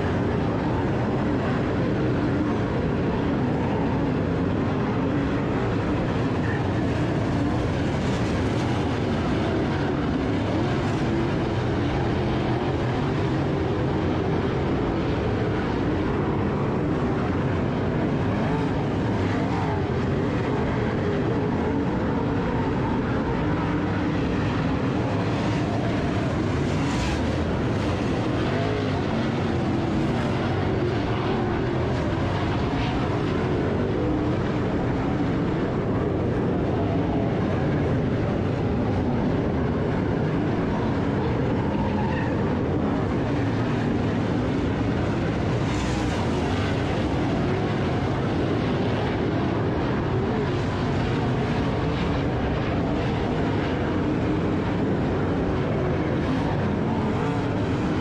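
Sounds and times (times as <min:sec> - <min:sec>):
race car engines: 0:00.0 - 0:58.0.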